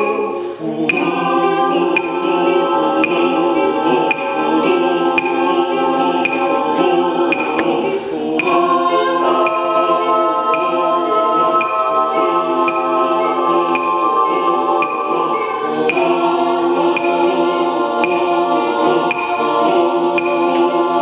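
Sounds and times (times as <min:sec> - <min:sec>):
mixed choir singing chords: 0:00.0 - 0:21.0.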